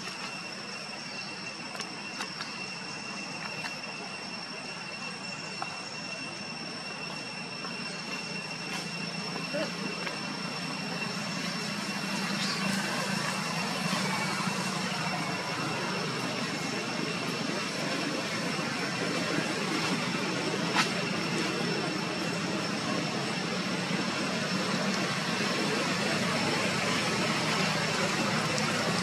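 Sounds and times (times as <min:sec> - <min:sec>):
outdoor background hum: 0:00.0 - 0:29.0
thin high tone: 0:00.0 - 0:29.0.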